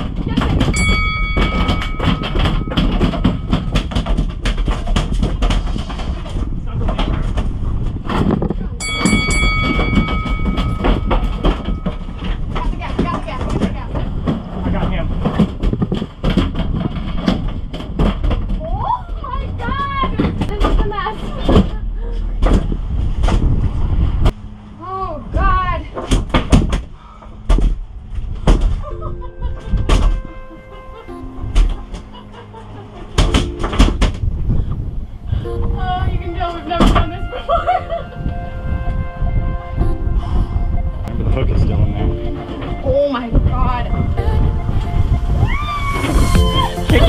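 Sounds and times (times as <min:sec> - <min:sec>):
wind rumbling on microphone: 0:00.0 - 0:32.2, 0:32.8 - 0:47.0
music with held notes: 0:28.9 - 0:34.1, 0:35.4 - 0:45.4, 0:46.0 - 0:47.0.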